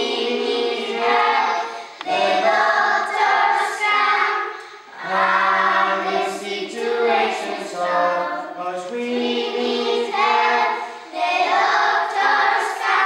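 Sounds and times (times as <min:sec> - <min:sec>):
children singing in chorus: 0:00.0 - 0:13.0.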